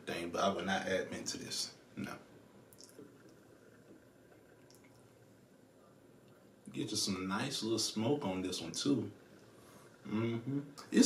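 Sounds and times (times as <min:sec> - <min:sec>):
hookah water bubbling: 0:02.0 - 0:07.3, 0:08.0 - 0:11.0.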